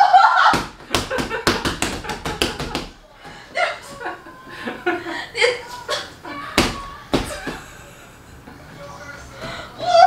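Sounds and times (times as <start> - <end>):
woman laughing and crying out: 0.0 - 0.6.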